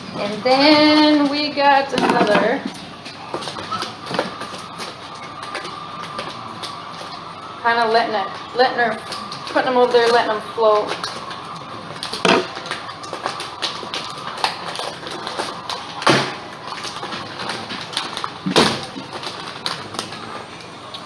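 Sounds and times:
plastic bags crinkling: 0.0s - 21.0s.

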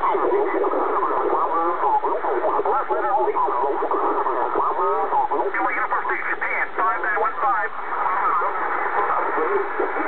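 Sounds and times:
faint radio hiss: 0.0s - 10.0s
tinny radio voice talking: 0.1s - 7.8s.

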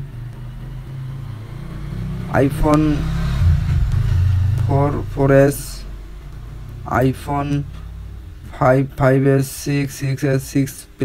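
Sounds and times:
low hum: 0.0s - 9.6s.

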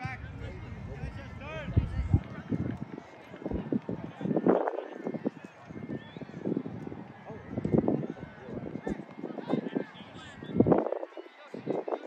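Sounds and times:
players and onlookers calling out: 0.0s - 12.0s.

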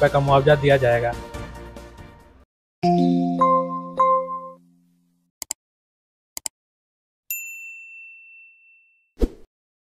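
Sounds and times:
bell-like notification ding: 2.8s - 4.7s, 7.3s - 9.1s.

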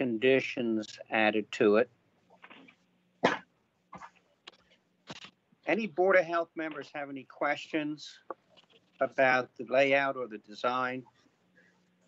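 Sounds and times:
person coughing: 3.2s - 4.1s.

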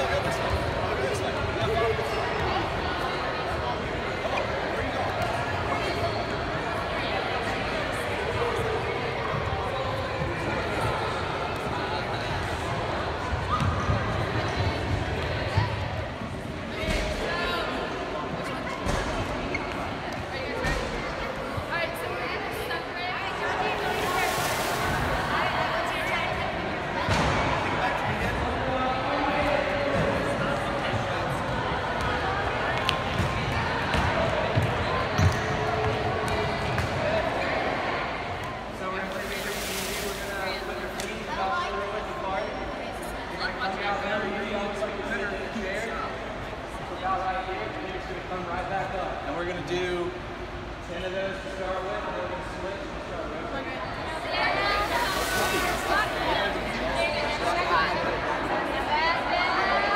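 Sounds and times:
children and adults talking: 0.0s - 59.9s
echoing hubbub of voices: 0.0s - 59.9s.

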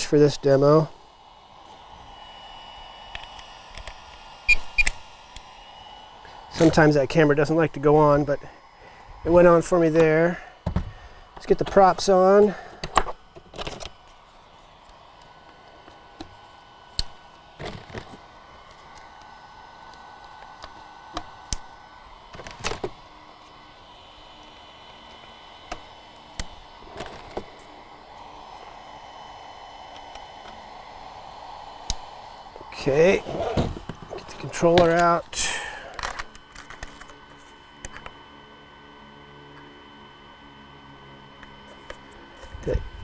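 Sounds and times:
propeller clicks and knocks: 35.9s - 37.2s.

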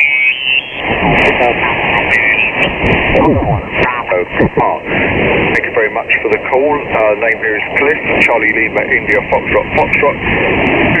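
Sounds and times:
garbled mistuned radio voices: 0.0s - 11.0s
radio band noise: 0.0s - 11.0s.

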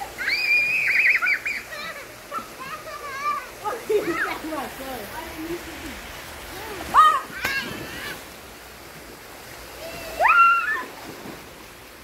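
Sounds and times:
pool water splashing: 0.0s - 12.0s
child squealing: 9.8s - 10.9s.

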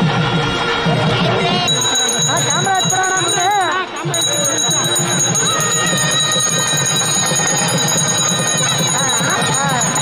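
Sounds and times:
hand bell ringing rapidly: 1.6s - 10.0s.

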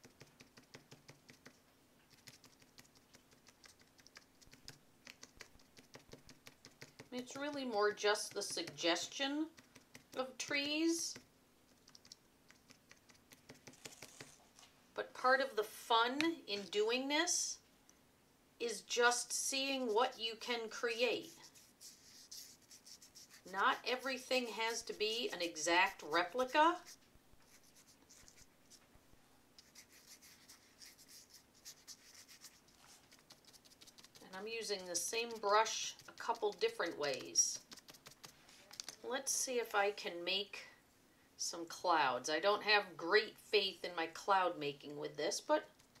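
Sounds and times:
paintbrush tapping on paper: 0.0s - 7.1s, 8.2s - 8.8s, 9.5s - 14.3s
paintbrush scratching on paper: 0.0s - 14.5s, 19.6s - 28.8s, 29.6s - 39.0s.

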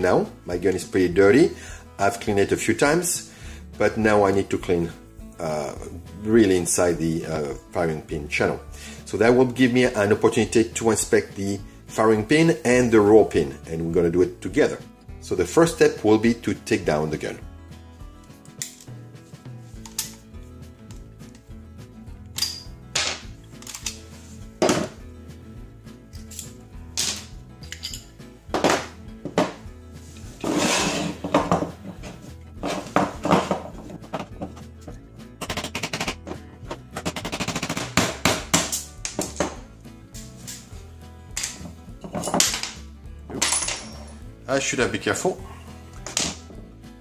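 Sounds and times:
background music: 0.0s - 47.0s
metallic clicks of pistol parts: 18.2s - 18.9s, 19.8s - 20.2s, 22.3s - 22.7s, 23.5s - 24.1s
hammer tapping on pin punch: 35.4s - 38.7s.

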